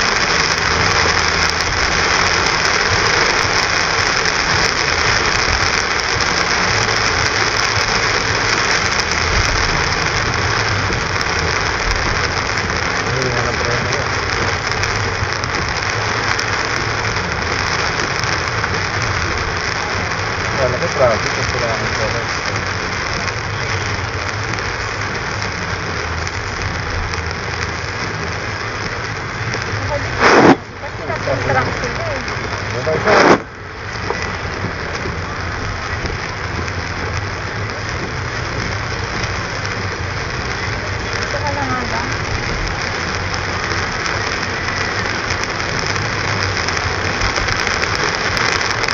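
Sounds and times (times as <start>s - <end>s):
rain on car: 0.0s - 48.9s
tyre and engine noise: 0.0s - 48.9s
loud sudden thumps: 30.2s - 30.7s.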